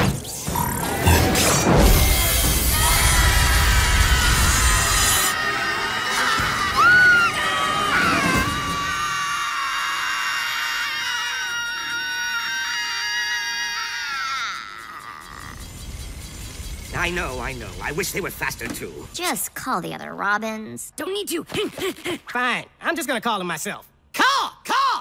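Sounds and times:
background music: 0.8s - 12.1s
cartoon voices screaming: 2.1s - 15.6s.

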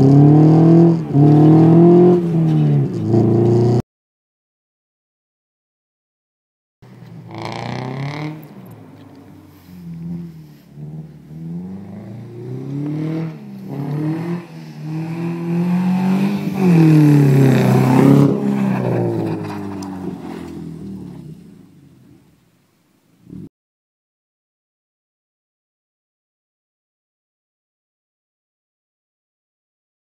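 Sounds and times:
car engine revving past: 0.0s - 3.8s, 7.0s - 22.2s.

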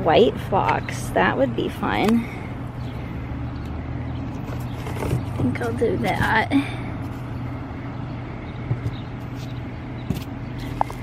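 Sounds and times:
low machine hum: 0.0s - 11.0s
outdoor background noise: 0.0s - 11.0s.

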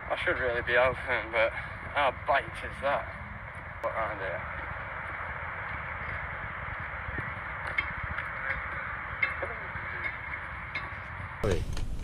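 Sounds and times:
muffled background noise: 0.0s - 12.0s.

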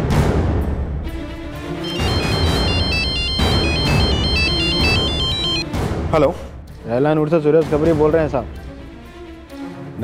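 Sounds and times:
dramatic background music with drums: 0.0s - 10.0s
phone ringtone beeping melody: 1.8s - 5.7s.

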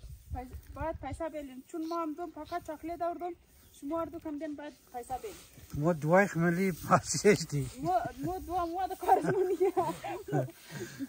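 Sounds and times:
grain hissing off a shovel: 0.0s - 11.0s
person talking: 0.3s - 10.6s.

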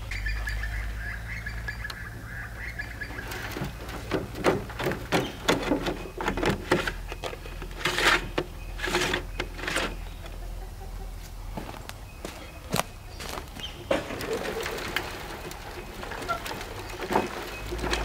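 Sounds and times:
metal drum clattering and scraping: 3.1s - 10.1s, 13.8s - 18.0s.

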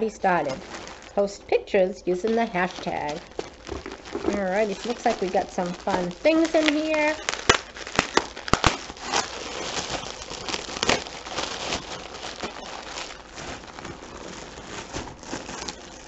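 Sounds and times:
sharp crackles: 0.0s - 1.4s, 2.2s - 16.0s
plastic packaging crinkling: 0.0s - 16.0s.

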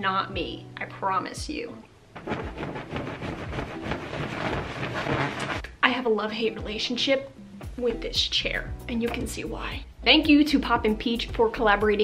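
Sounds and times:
padded chair rustling and creaking: 2.2s - 5.7s.

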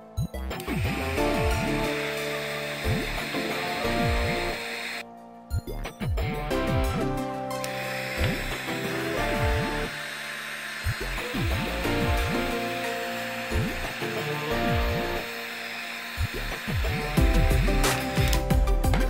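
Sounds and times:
background music: 0.0s - 19.0s
heat gun blowing air: 0.6s - 5.0s, 7.6s - 19.0s.

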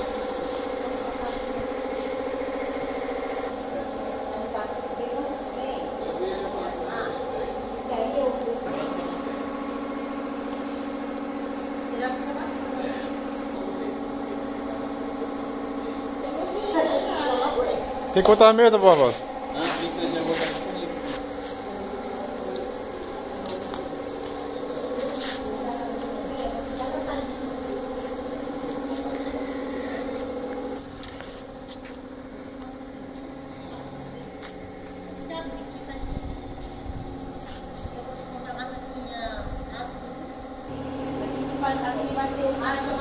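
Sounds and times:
steady mechanical hum: 0.0s - 43.0s.

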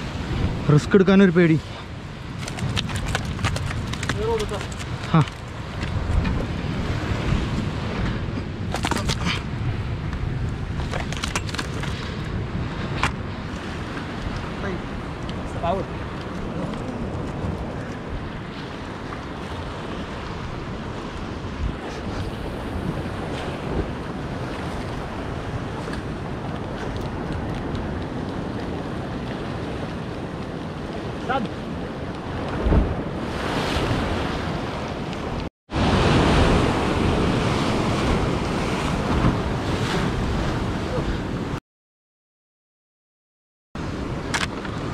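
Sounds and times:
surf breaking on rocky shore: 0.0s - 41.6s
wind buffeting microphone: 0.0s - 41.6s.

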